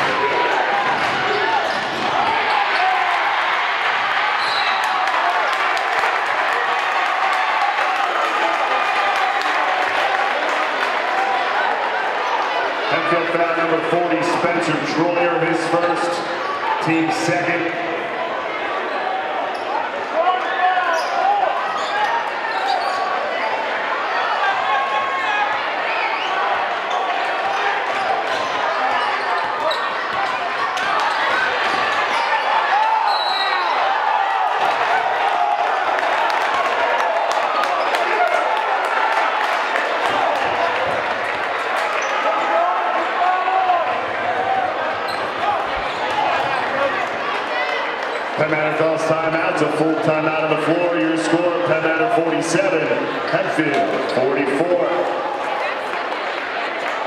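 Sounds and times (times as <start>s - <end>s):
crowd voices and shouting: 0.0s - 57.0s.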